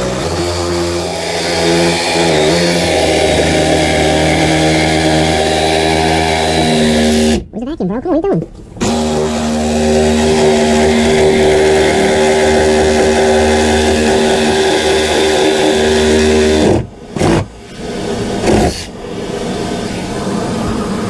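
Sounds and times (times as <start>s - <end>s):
power saw cutting wood: 0.0s - 7.4s, 8.8s - 20.1s.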